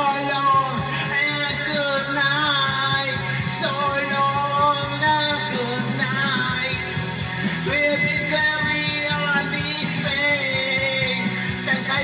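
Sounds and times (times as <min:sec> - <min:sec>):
loud rock song: 0:00.0 - 0:12.0
man singing into microphone: 0:00.0 - 0:12.0.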